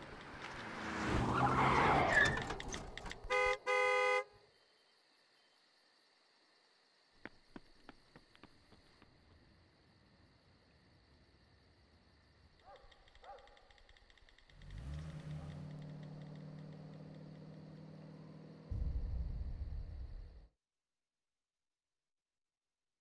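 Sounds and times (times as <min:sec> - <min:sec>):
crickets chirping: 0:03.8 - 0:20.5
sharp clicks: 0:12.6 - 0:17.3.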